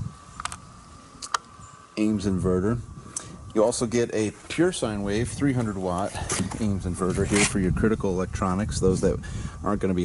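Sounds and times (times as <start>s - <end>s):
faint steady whine: 0.0s - 10.0s.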